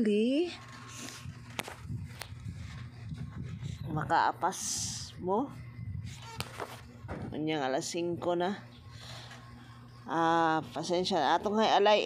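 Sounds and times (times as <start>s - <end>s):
low background rumble: 0.4s - 11.5s.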